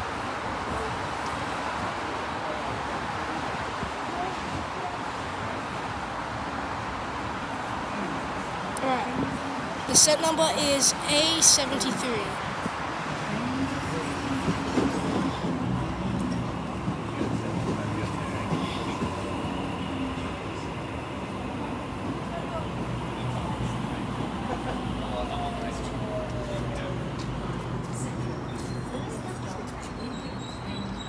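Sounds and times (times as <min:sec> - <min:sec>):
electric train hum: 0:05.0 - 0:28.1.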